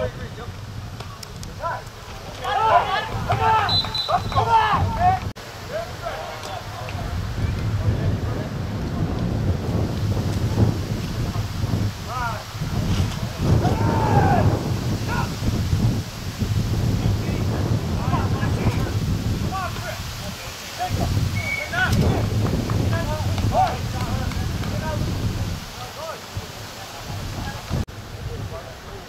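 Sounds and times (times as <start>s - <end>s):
wind buffeting microphone: 0.0s - 29.0s
distant shouts and calls: 1.6s - 7.6s, 13.4s - 15.4s, 18.0s - 25.0s.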